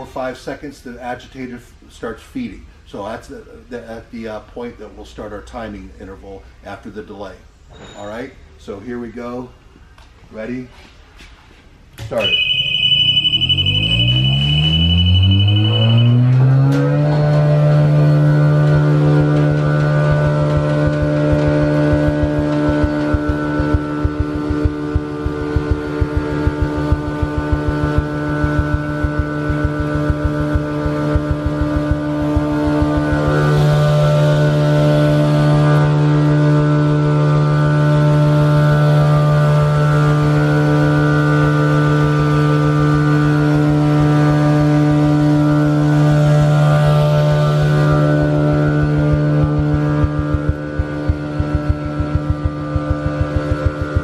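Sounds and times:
insulation blowing machine hum: 0:12.1 - 0:54.0.

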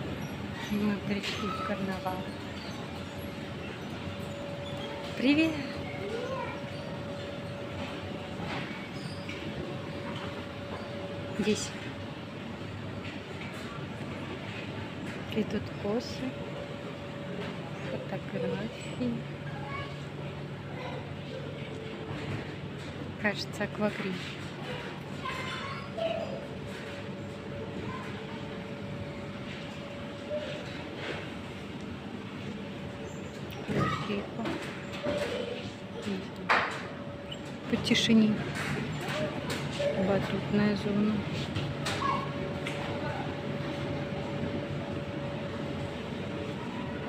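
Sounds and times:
indoor play centre din: 0:00.0 - 0:47.0.

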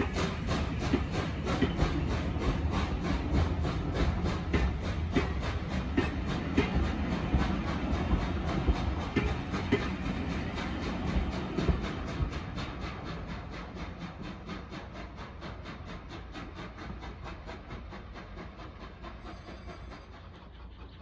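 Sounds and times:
train coaches rolling on track: 0:00.0 - 0:21.0.

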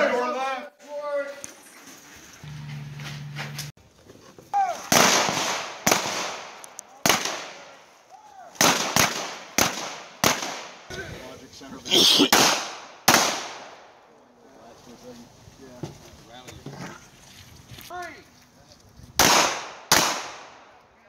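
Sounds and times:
gunshots: 0:04.8 - 0:07.8, 0:08.5 - 0:10.9, 0:12.3 - 0:13.8, 0:19.2 - 0:20.7.

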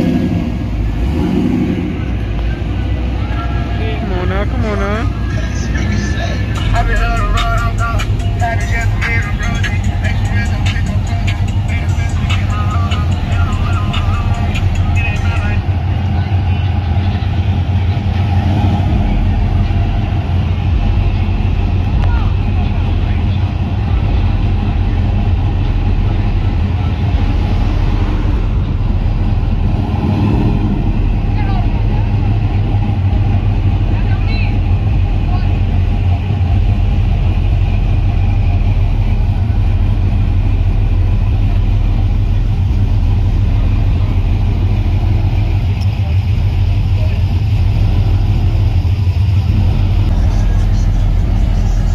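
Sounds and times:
car engines running: 0:00.0 - 0:51.9
steady deep rumble: 0:00.0 - 0:51.9
people talking: 0:01.9 - 0:27.6, 0:31.2 - 0:36.0, 0:45.5 - 0:48.8, 0:49.4 - 0:51.9
music: 0:06.4 - 0:15.6.

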